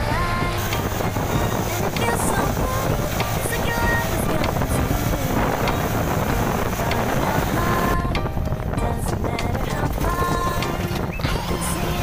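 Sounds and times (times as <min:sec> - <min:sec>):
faint soft music: 0:00.0 - 0:12.0
road rush from moving vehicle: 0:00.0 - 0:12.0
wind buffeting microphone: 0:00.0 - 0:12.0.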